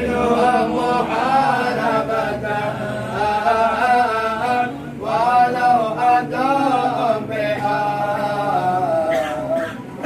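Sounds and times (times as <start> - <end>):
men chanting together: 0.0 - 9.7.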